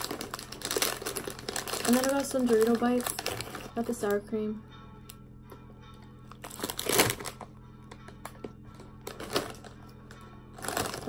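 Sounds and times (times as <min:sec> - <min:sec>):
plastic snack bags rustling: 0:00.0 - 0:04.1, 0:06.4 - 0:07.5, 0:08.7 - 0:11.0
quiet background music: 0:00.0 - 0:11.0.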